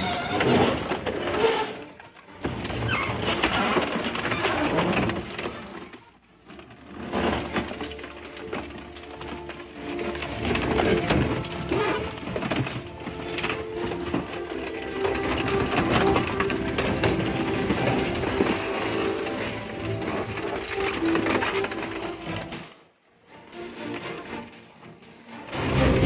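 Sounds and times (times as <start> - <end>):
shredder crunching metal: 0.0 - 26.0.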